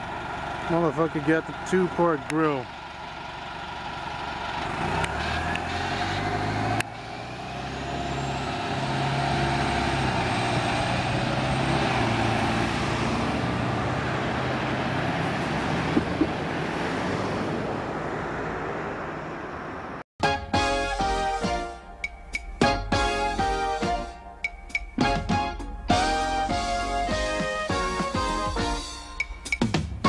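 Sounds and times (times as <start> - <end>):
bus engines running: 0.0 - 20.0, 22.6 - 29.2
bus road noise passing by: 0.0 - 20.0.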